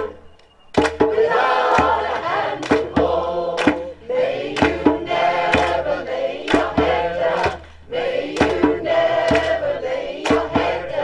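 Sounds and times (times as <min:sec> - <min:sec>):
mixed choir singing in harmony: 0:00.0 - 0:11.0
hand drum beat: 0:00.8 - 0:07.7, 0:08.3 - 0:11.0.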